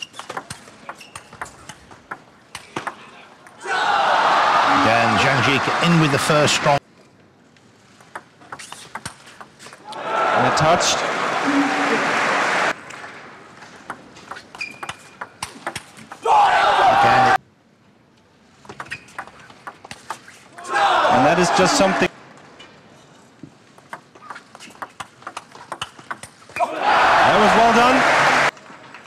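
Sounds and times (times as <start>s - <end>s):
crowd cheering and shouting: 3.6s - 6.8s, 9.9s - 12.7s, 16.2s - 17.4s, 20.6s - 22.1s, 26.6s - 28.5s
table tennis ball clicking: 23.8s - 26.4s.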